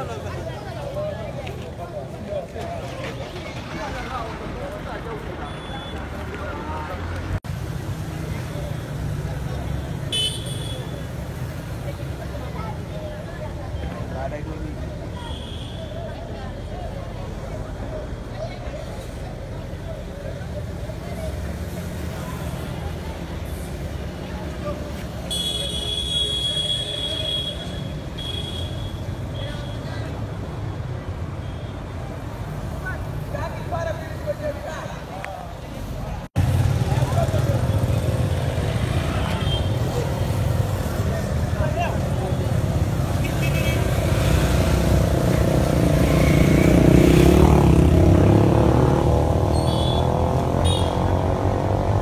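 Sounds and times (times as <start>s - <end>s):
steady low street rumble: 0.0s - 52.0s.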